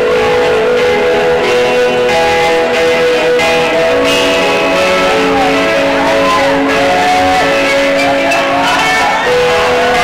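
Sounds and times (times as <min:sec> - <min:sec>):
bass guitar: 0:00.0 - 0:10.0
electric guitars: 0:00.0 - 0:10.0.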